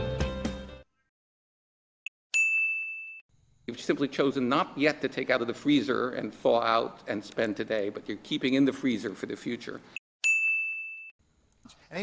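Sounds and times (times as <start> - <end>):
high bell ding: 2.4 - 3.3, 10.2 - 11.2.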